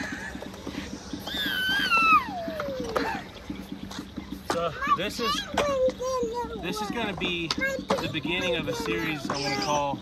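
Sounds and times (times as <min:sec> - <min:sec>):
low hum: 0:00.0 - 0:04.5
toddler squealing: 0:01.2 - 0:03.2.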